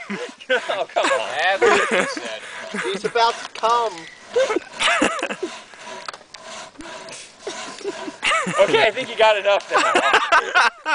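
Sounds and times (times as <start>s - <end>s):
people laughing: 0.0s - 6.1s, 6.8s - 10.9s.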